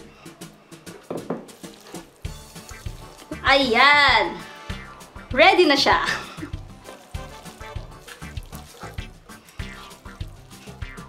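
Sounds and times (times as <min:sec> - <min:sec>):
utensil scraping a pan: 0:01.0 - 0:03.4, 0:06.0 - 0:11.0.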